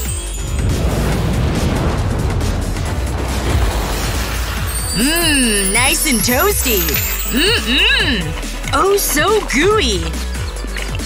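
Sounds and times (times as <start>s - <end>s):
background music: 0.0s - 11.0s
rushing burst of fire: 0.5s - 5.0s.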